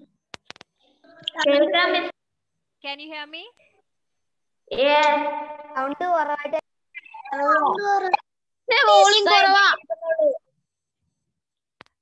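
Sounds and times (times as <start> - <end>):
voice on video call: 1.0 - 2.2, 4.7 - 10.5.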